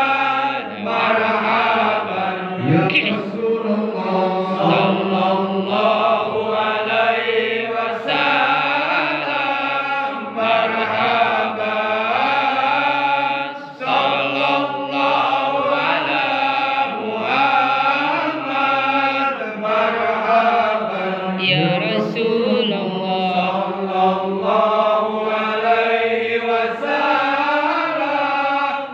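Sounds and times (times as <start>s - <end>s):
men chanting a hymn over loudspeakers: 0.0s - 28.9s.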